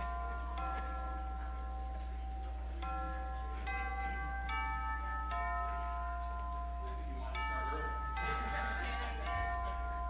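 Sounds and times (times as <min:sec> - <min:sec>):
bell-like chime notes: 0:00.0 - 0:10.0
low electrical hum: 0:00.0 - 0:10.0.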